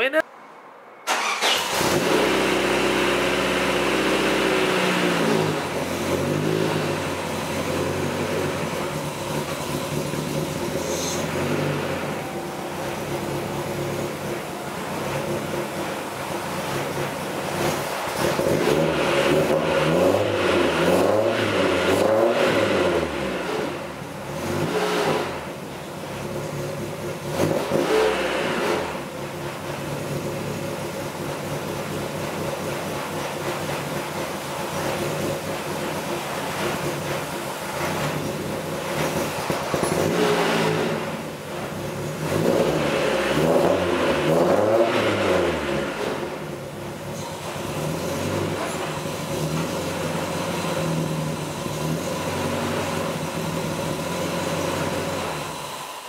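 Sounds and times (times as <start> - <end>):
car engine idling and revving: 0.0 - 56.0.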